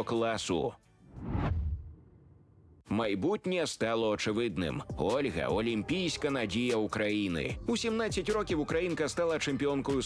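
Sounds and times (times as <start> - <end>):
whoosh transition: 1.1 - 2.2
low rumble: 1.1 - 2.8.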